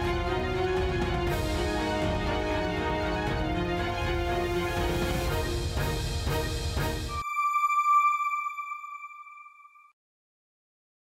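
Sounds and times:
electronic chime: 7.1 - 9.9.

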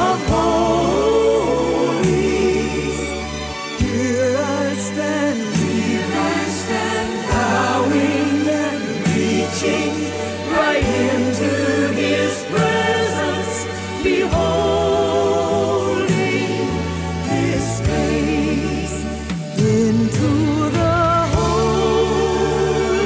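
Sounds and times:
gospel choir singing: 0.0 - 23.0
instrumental accompaniment: 0.0 - 23.0.

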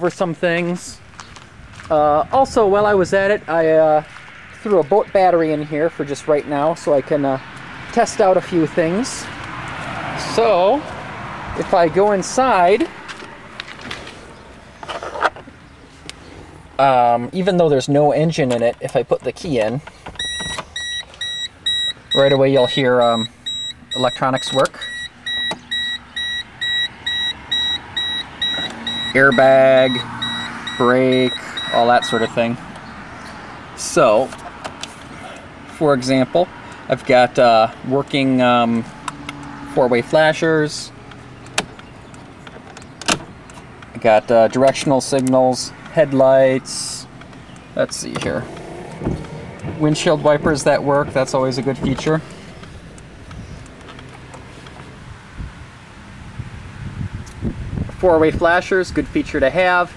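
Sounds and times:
car warning chime beeping: 20.2 - 32.5.

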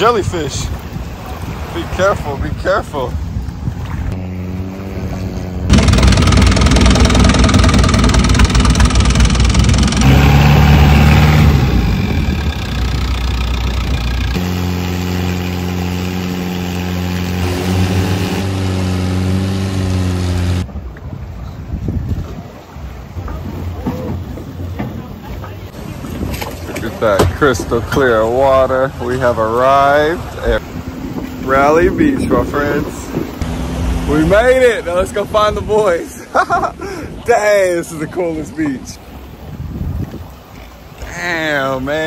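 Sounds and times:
boat engine running: 0.0 - 35.8.

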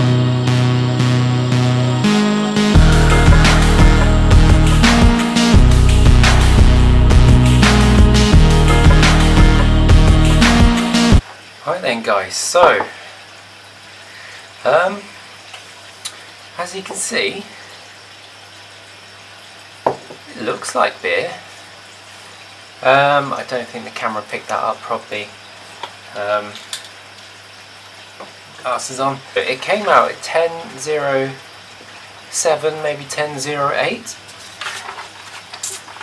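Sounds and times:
background hiss: 11.2 - 34.7
hissy scrapes or rustles: 34.3 - 36.0.

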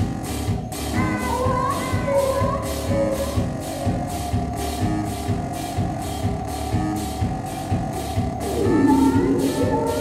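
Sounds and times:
live band playing: 0.0 - 10.0
synthesizer drone: 0.0 - 10.0
hissing electronic pulse: 3.5 - 10.0.

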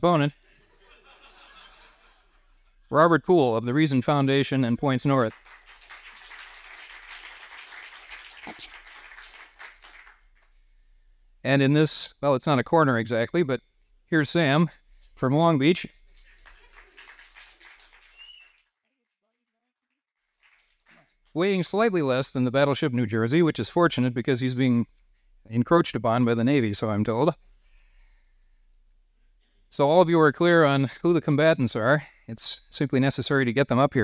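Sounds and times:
audience chuckling and laughing: 0.4 - 2.9, 16.1 - 18.3.

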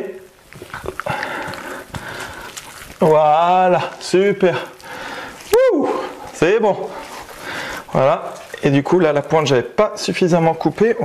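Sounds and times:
wet meat handling sounds: 0.0 - 11.0.

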